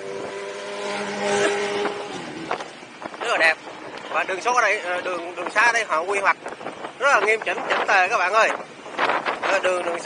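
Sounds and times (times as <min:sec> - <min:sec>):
motorcycle engine cruising: 0:00.0 - 0:07.8
wind and road noise: 0:00.0 - 0:10.0.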